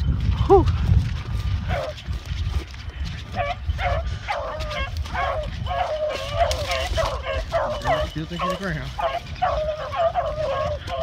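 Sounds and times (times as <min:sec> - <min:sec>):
hounds yelping and baying: 0:00.1 - 0:11.0.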